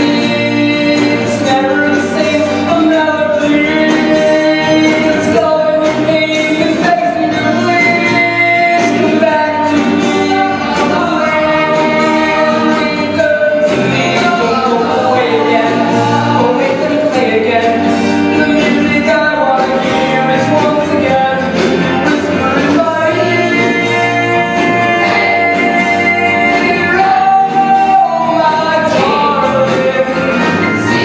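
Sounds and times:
group singing doo-wop song: 0.0s - 31.0s
guitar accompaniment: 0.0s - 31.0s.

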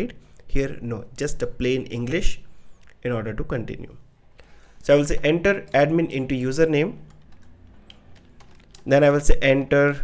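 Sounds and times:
computer keyboard typing: 5.0s - 9.2s.

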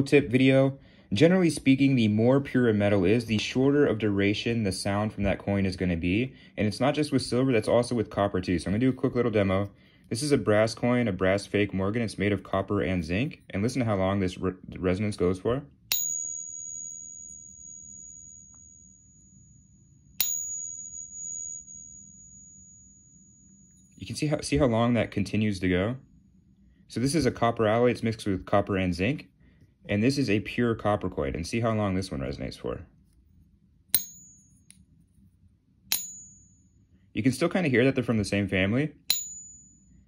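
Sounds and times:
stick tapping coin: 15.9s - 17.0s, 20.2s - 20.8s, 34.0s - 34.4s, 35.9s - 36.4s, 39.1s - 39.6s
high pure metallic ring: 15.9s - 24.4s, 33.0s - 37.1s, 39.0s - 40.0s.

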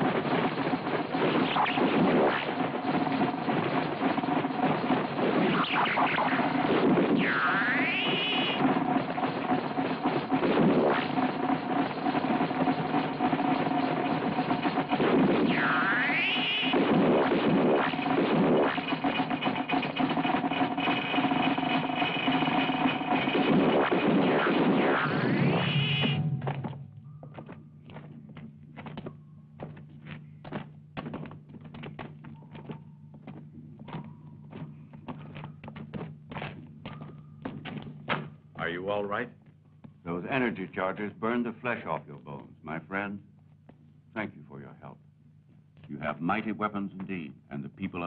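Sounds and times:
noisy ray-gun sound effects: 0.0s - 26.8s
electronic music with held tones: 0.0s - 38.1s
swooping electronic whines: 0.0s - 38.1s.

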